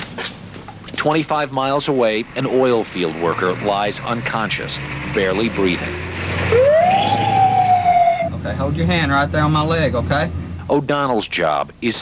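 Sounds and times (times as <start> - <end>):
ambulance siren wailing: 6.3 - 8.4.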